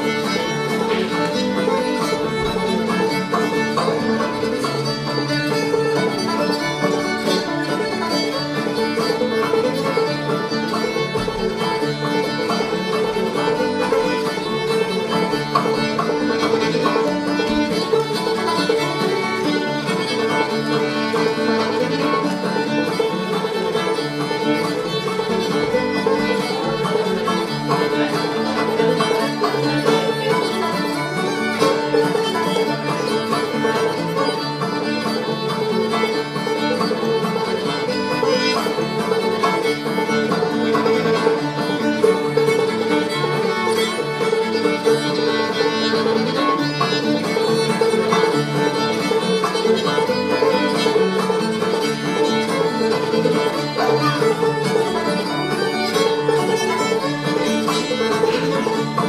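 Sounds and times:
acoustic guitar: 0:00.0 - 0:59.0
banjo: 0:00.0 - 0:59.0
fiddle: 0:00.0 - 0:59.0.

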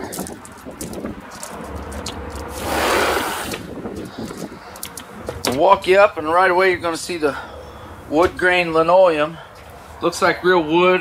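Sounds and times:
rush of noise: 0:01.4 - 0:04.6.

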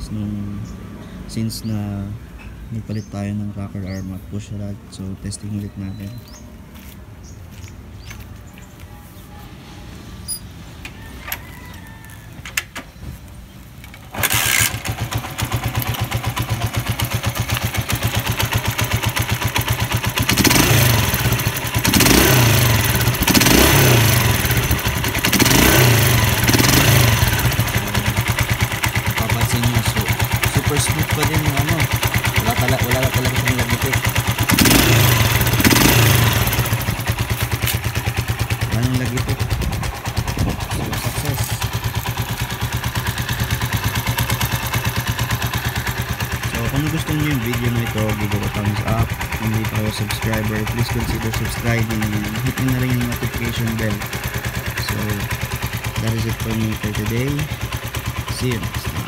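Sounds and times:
motorcycle engine starting and idling: 0:10.2 - 0:59.0
engine revving: 0:14.1 - 0:59.0.

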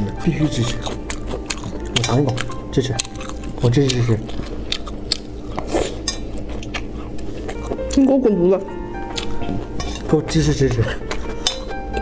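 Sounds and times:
person crunching food: 0:00.0 - 0:08.0, 0:09.0 - 0:10.2, 0:10.8 - 0:12.0.

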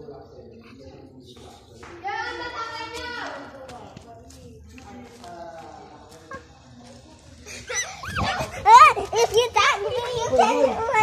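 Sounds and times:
children's excited high-pitched cries: 0:07.6 - 0:11.0.

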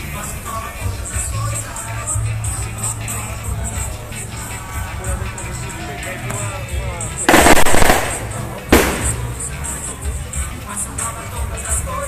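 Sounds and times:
background music: 0:00.0 - 0:12.0
firecracker loud bang: 0:07.3 - 0:09.4
firecrackers crackling: 0:07.3 - 0:09.5.

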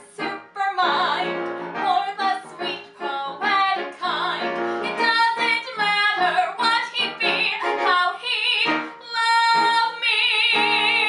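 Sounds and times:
woman singing: 0:00.0 - 0:11.0.

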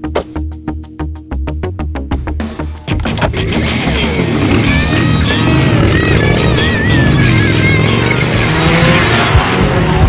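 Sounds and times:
background music: 0:00.0 - 0:10.0
motorcycle engine pulling away: 0:03.6 - 0:09.7.

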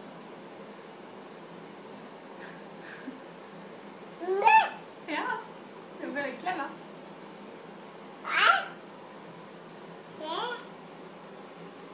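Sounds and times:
toddler squealing: 0:08.2 - 0:08.8.

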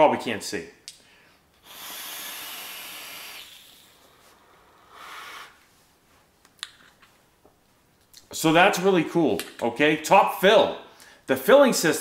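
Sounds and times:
airy hiss of vape draw: 0:01.6 - 0:05.6.

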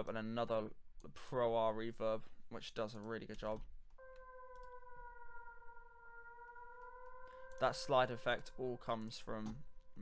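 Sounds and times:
synth siren tone: 0:04.0 - 0:10.0.

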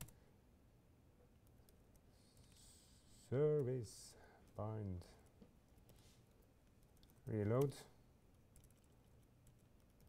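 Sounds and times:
computer keyboard typing: 0:08.5 - 0:10.0.

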